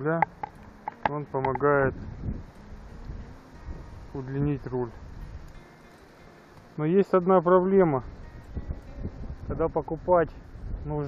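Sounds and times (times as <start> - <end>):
wind buffeting microphone: 0.0 - 5.7, 7.1 - 11.0.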